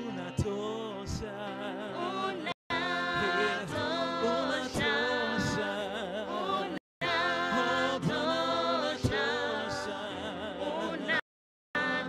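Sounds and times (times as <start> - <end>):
choir singing in harmony: 1.1 - 11.2, 11.8 - 12.0.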